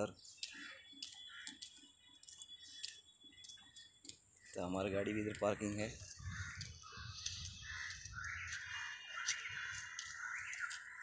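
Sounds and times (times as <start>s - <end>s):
bird calls and caws: 0.0s - 11.0s.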